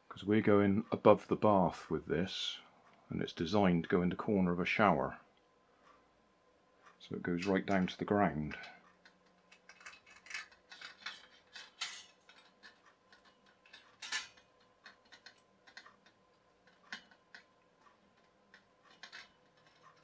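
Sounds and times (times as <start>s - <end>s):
metal clinking on metal: 9.5s - 20.0s.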